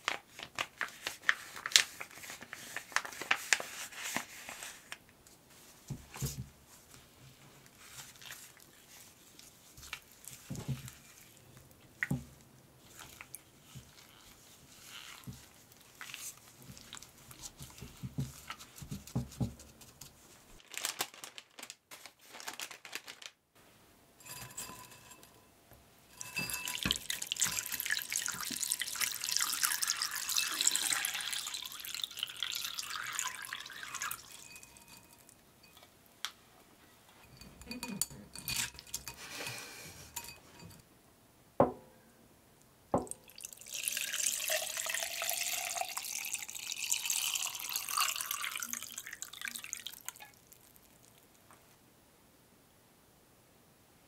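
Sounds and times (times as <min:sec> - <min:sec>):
water splashing in glass bowl: 0:26.1 - 0:35.8, 0:43.0 - 0:50.9.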